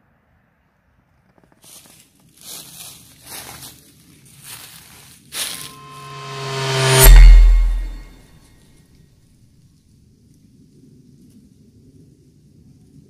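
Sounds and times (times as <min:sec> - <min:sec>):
rustling crunches: 0:01.6 - 0:05.8
rising riser effect: 0:05.6 - 0:08.1
deep bass boom: 0:05.7 - 0:08.1.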